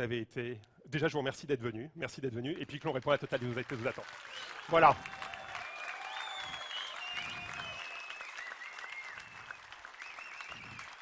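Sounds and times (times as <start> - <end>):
audience applauding: 2.9 - 11.0.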